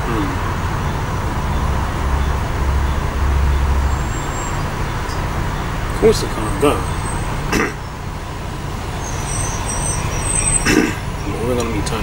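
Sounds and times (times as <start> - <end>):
bus engine rumble: 0.0 - 12.0
road noise: 0.0 - 12.0.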